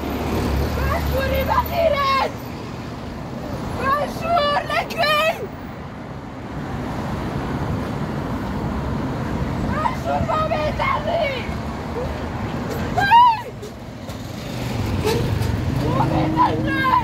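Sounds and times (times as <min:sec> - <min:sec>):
car traffic on a busy road: 0:00.0 - 0:17.0
woman shouting slogans: 0:03.8 - 0:05.5, 0:09.7 - 0:11.6, 0:15.8 - 0:17.0.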